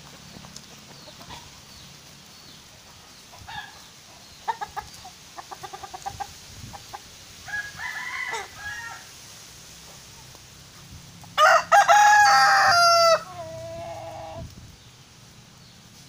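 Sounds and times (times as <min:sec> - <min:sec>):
chickens clucking: 0:00.0 - 0:07.4, 0:09.8 - 0:16.0.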